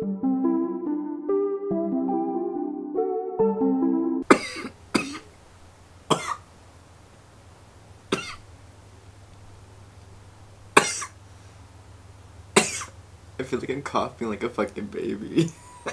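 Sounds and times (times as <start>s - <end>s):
person coughing: 4.2s - 5.3s, 6.1s - 6.4s, 8.1s - 8.4s, 10.8s - 11.2s, 12.6s - 13.0s, 15.4s - 15.9s
faint low hum: 4.3s - 15.9s.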